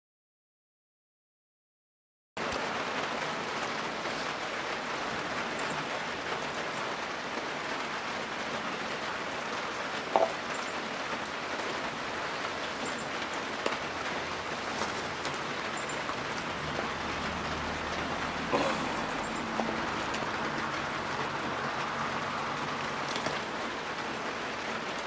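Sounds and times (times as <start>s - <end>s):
outdoor background hiss: 2.4s - 25.0s.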